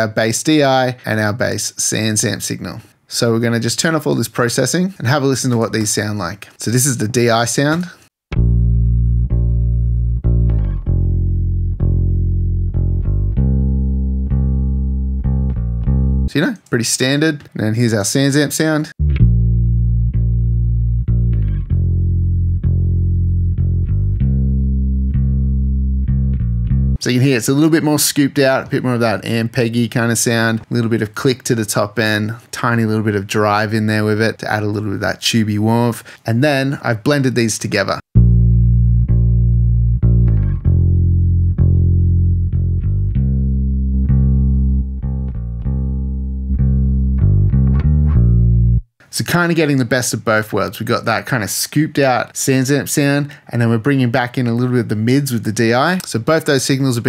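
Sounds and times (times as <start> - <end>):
bass guitar plucked notes: 8.3 - 16.3, 19.0 - 27.0, 38.1 - 48.9.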